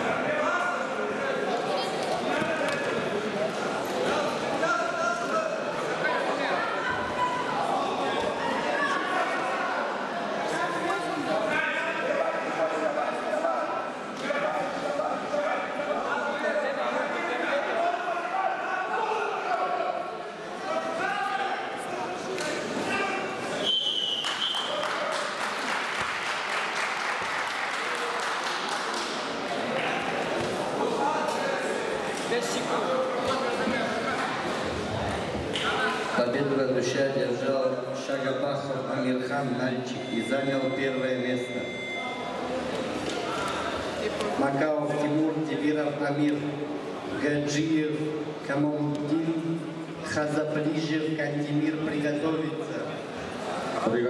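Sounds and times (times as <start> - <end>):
echoing hubbub of voices: 0.0 - 54.0.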